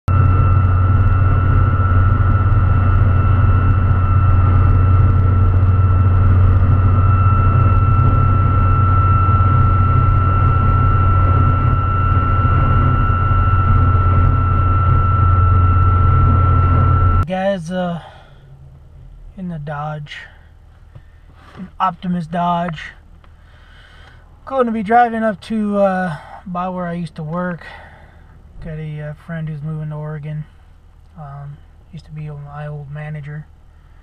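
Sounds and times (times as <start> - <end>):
engine and road drone: 0.0 - 34.0
light bar whistling in wind: 0.1 - 17.3.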